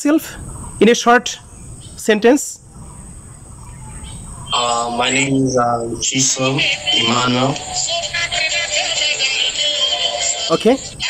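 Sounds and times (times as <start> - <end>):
man saying okay: 4.6 - 7.7.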